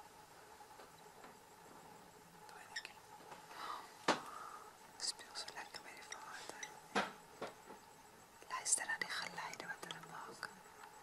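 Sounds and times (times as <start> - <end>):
faint whispering voices: 2.1 - 3.2, 4.6 - 6.8, 8.4 - 10.7.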